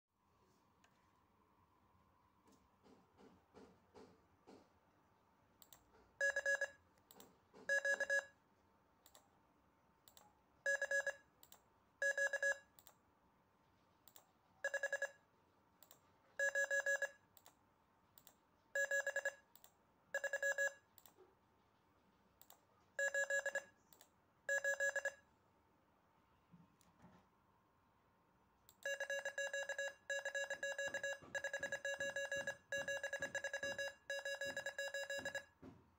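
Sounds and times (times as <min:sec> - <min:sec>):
morse code beeps: 0:06.2 - 0:06.8, 0:07.7 - 0:08.4, 0:10.7 - 0:11.2, 0:12.0 - 0:12.7, 0:16.4 - 0:17.2, 0:18.8 - 0:19.4, 0:20.2 - 0:20.8, 0:23.0 - 0:23.8, 0:24.5 - 0:25.2, 0:28.8 - 0:35.6.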